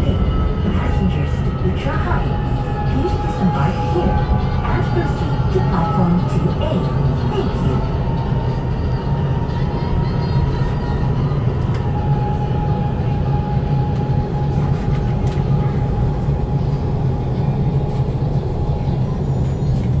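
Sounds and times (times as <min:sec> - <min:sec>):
faint high train whine: 0:00.0 - 0:20.0
train low rumble: 0:00.0 - 0:20.0.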